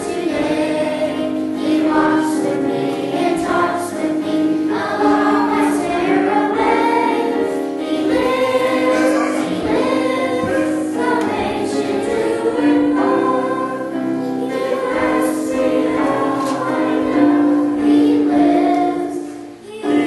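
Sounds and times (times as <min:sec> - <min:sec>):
church choir singing: 0:00.0 - 0:20.0.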